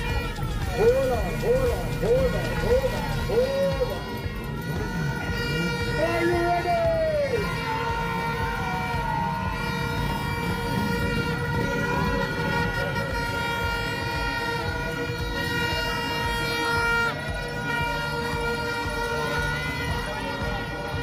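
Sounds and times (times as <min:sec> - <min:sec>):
car and motorbike engines rumbling: 0:00.0 - 0:21.0.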